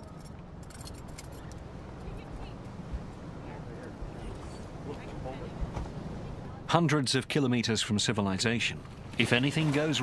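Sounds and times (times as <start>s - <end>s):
scuba gear clinking and rattling: 0.0s - 1.6s.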